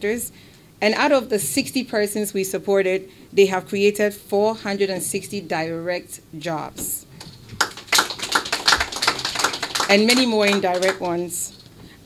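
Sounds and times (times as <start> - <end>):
sharp irregular taps or claps: 7.2 - 11.2.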